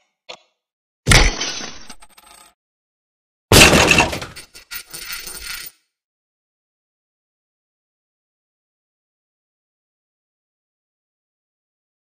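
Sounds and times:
alarm clock smashing crash: 1.1s - 2.1s, 3.5s - 4.6s.

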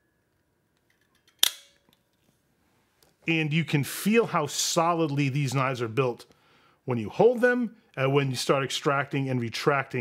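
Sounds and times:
knife blade snapping shut: 1.3s - 1.8s.

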